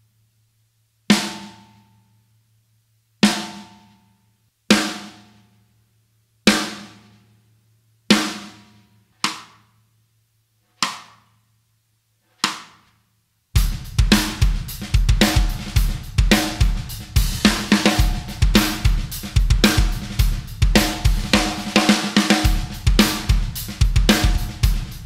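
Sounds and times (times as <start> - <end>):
drum kit groove: 8.1 - 9.6, 12.4 - 12.9, 13.6 - 25.0.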